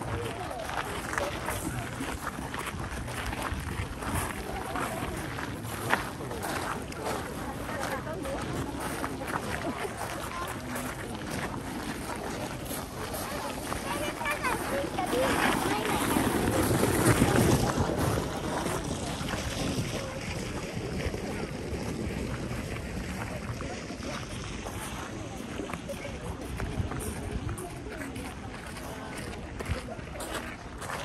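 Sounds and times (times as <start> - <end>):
wind rumble on microphone: 0.0 - 10.0, 11.2 - 31.0
crowd chatting: 0.0 - 31.0.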